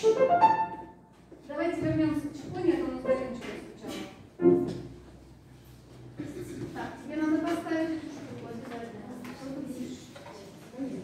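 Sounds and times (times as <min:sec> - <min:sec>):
woman talking: 0:01.4 - 0:04.3, 0:06.4 - 0:11.0.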